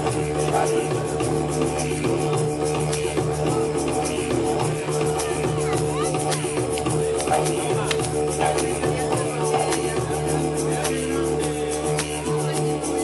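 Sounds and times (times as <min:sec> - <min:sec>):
didgeridoo drone: 0:00.0 - 0:13.0
percussion rhythm: 0:00.0 - 0:13.0.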